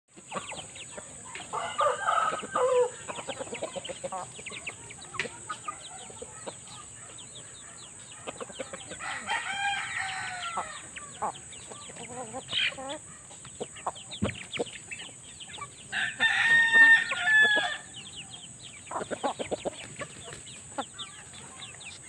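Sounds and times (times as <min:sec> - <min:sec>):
chickens clucking and calling: 0:00.1 - 0:22.0
rooster crowing: 0:01.4 - 0:03.2, 0:08.8 - 0:11.5, 0:15.9 - 0:18.0.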